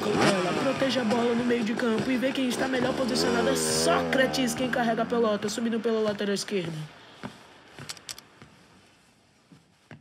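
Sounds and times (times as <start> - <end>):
footsteps on hard floor: 6.5 - 10.0.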